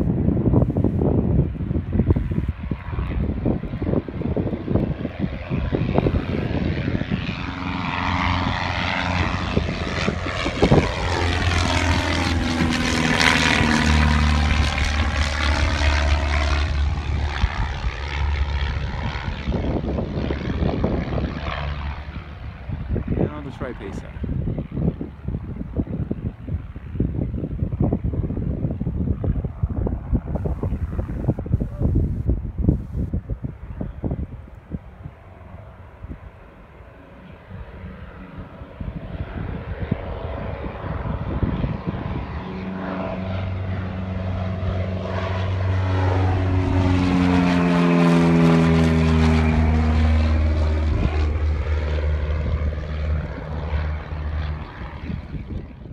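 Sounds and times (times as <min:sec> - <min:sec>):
propeller airplane taking off: 0:00.0 - 0:55.9
wind buffeting microphone: 0:00.0 - 0:55.9.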